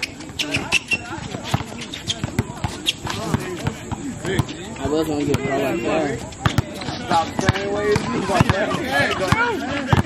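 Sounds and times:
basketball bouncing on hard court: 0.2s - 5.6s, 6.4s - 10.0s.

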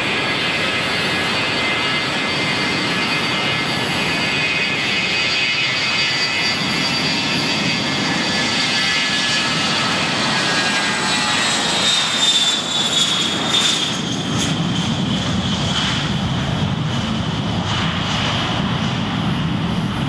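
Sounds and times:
jet taking off: 0.0s - 20.0s.

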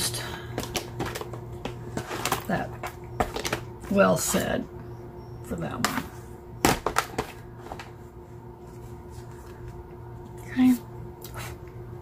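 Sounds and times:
low steady hum: 0.0s - 12.0s
plastic cases clacking: 0.6s - 3.7s.

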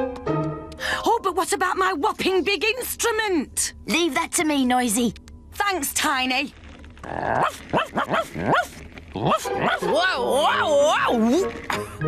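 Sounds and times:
cartoon robot barking: 7.4s - 10.7s.

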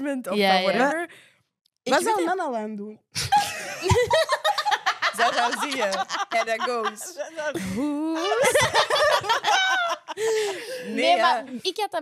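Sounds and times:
women laughing: 3.2s - 11.0s.

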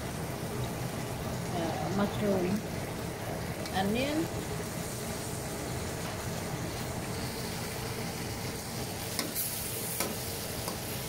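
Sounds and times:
food sizzling in a wok: 0.0s - 11.0s.

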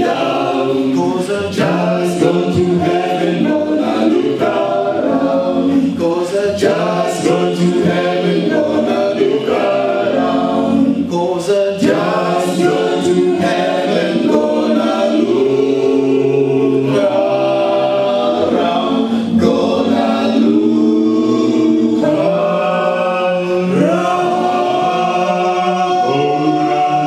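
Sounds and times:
male vocal group singing in harmony: 0.0s - 27.0s.

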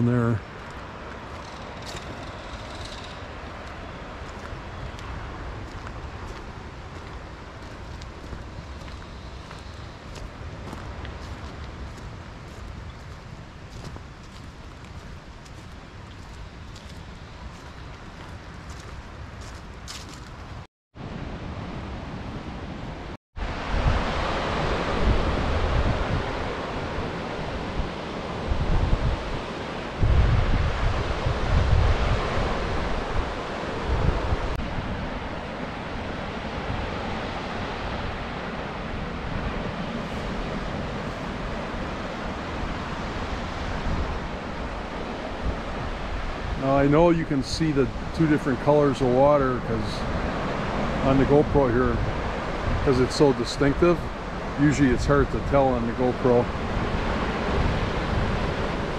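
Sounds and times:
waves breaking on shore: 0.0s - 58.9s
footsteps on gravel: 3.4s - 20.4s
wind buffeting microphone: 23.4s - 58.9s.

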